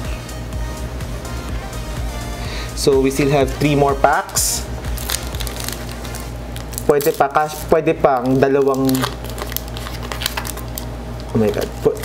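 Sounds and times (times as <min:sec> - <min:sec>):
foil wrapper crinkling and tearing: 0:04.1 - 0:12.0.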